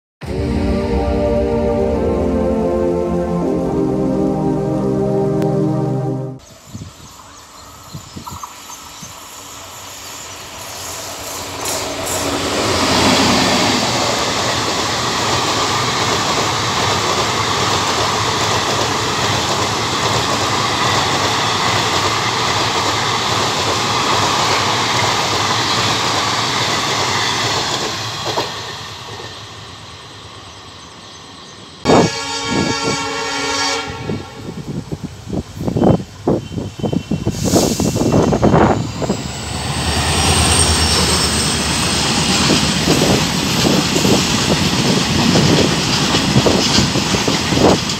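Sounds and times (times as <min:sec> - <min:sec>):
train horn: 0:00.2 - 0:06.4, 0:31.9 - 0:34.8
passing freight train roar: 0:00.2 - 0:07.4, 0:08.8 - 0:47.9
train rail running noise: 0:00.2 - 0:47.9
freight train clanking: 0:37.5 - 0:47.9.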